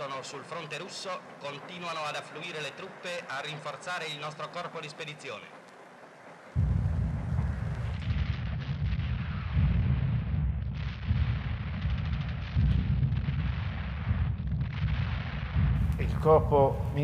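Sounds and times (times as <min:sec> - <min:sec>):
continuous deep rumble: 0:00.0 - 0:17.0
artillery blasts: 0:06.5 - 0:17.0
rapid gunfire: 0:06.5 - 0:17.0.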